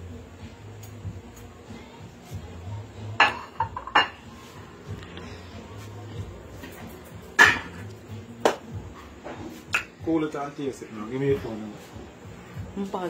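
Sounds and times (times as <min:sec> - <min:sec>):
metal pot and ladle clanking: 0:07.4 - 0:07.8.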